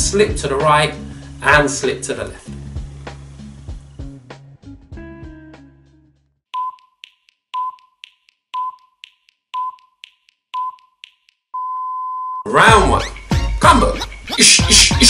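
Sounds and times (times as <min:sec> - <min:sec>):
background music: 0:00.0 - 0:06.2, 0:12.5 - 0:15.0
electronic countdown beeps: 0:06.6 - 0:12.4.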